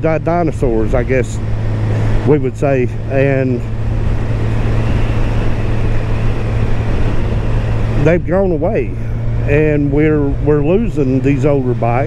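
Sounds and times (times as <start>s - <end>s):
motorcycle engine cruising: 0.0s - 12.0s
wind rush over microphone: 3.4s - 11.8s.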